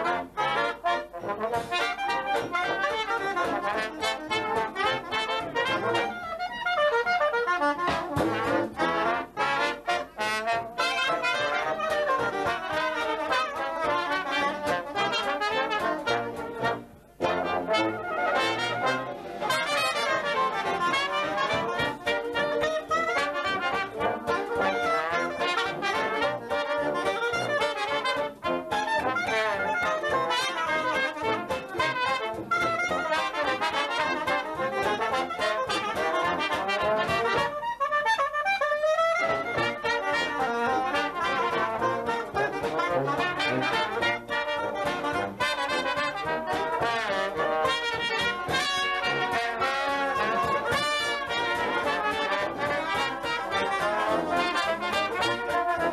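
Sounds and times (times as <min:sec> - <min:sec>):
jazz band playing: 0:00.0 - 0:55.9.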